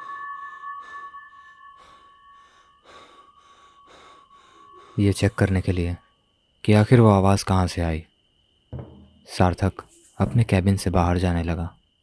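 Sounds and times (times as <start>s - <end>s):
pulsing soft hiss: 0.0s - 11.0s
steady ringing tones: 0.0s - 12.0s.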